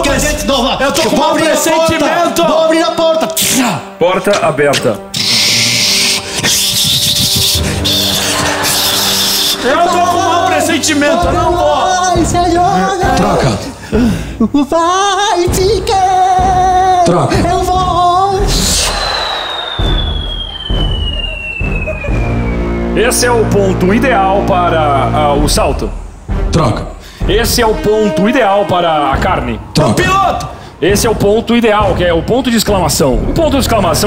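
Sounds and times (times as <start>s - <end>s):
descending whistle: 5.2s - 10.4s, 18.5s - 23.8s
low music thuds: 9.3s - 34.0s.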